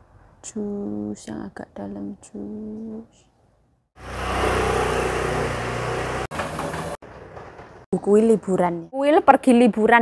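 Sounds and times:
motor engine running: 4.0 - 7.0.

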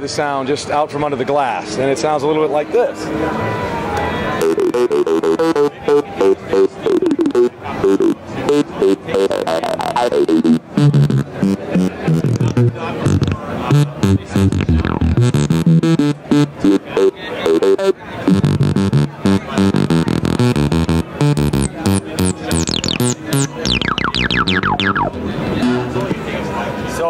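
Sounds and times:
synthesizer low note pattern: 4.4 - 26.2
synthesizer falling sweeps: 18.3 - 26.0.

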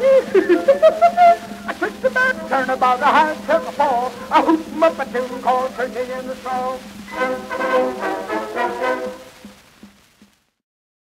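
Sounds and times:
brassy instrumental notes: 0.4 - 9.6.

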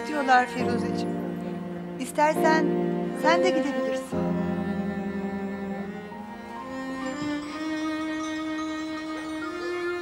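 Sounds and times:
sad low bowed strings: 0.0 - 10.0.

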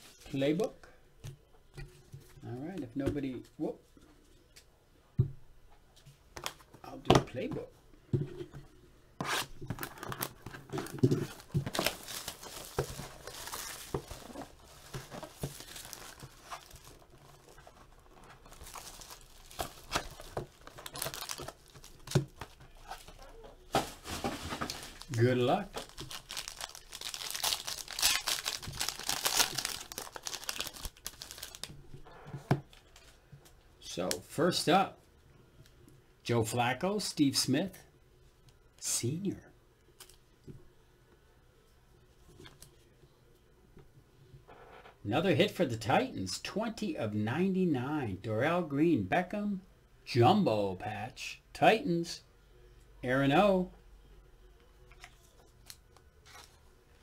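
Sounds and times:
plastic wrapping crinkling: 9.6 - 31.8.

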